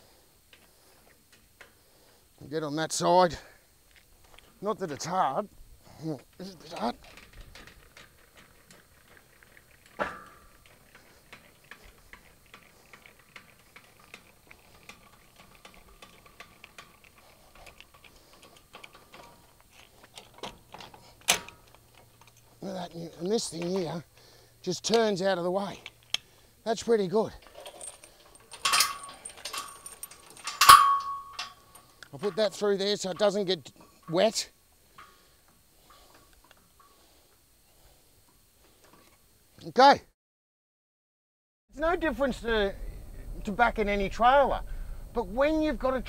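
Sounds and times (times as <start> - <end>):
crank winding metallic ticks: 6.3 - 37.4
metal clank: 6.6 - 12.3, 27.4 - 37.0
metal clink: 27.3 - 37.1
metal clank ringing: 27.6 - 32.4.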